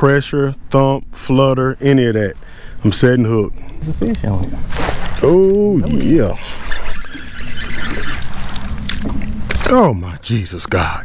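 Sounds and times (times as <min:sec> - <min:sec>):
wind: 0:00.0 - 0:11.0
water around boat: 0:03.6 - 0:10.0
fish splashing: 0:06.4 - 0:09.7.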